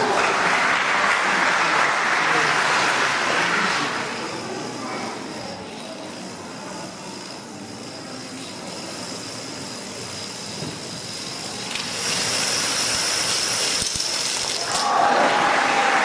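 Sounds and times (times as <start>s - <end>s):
dominoes toppling: 3.2s - 15.3s.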